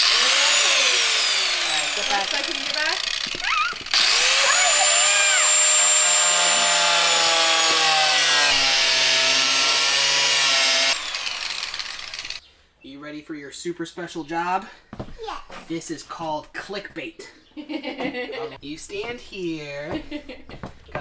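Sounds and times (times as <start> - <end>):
angle grinder cutting steel: 0.0 - 12.4.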